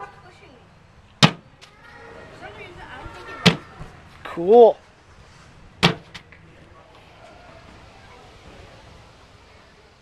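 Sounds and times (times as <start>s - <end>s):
bean bag thud on wooden board: 1.2s - 1.4s.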